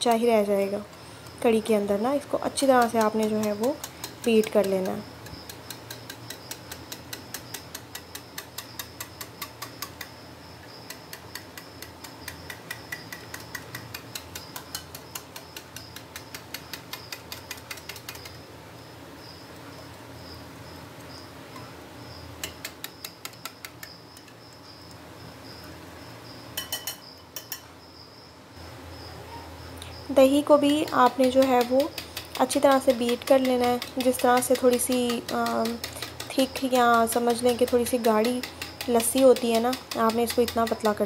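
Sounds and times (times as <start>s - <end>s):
whisk clicking against bowl: 2.5s - 10.1s, 10.9s - 18.4s, 30.4s - 41.0s.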